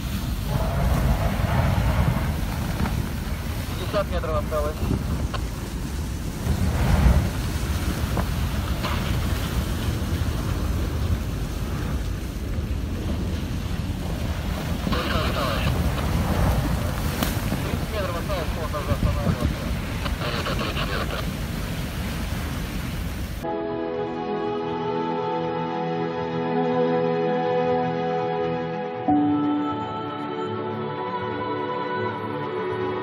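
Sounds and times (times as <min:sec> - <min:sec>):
ship hull grinding through ice: 0:00.0 - 0:03.8, 0:04.8 - 0:11.9
wind buffeting microphone: 0:00.0 - 0:23.5.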